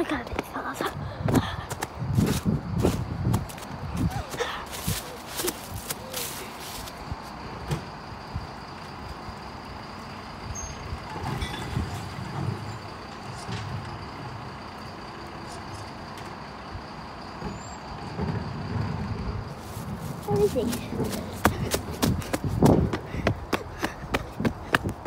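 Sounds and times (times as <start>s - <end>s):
lorry engine hum: 0.0s - 25.0s.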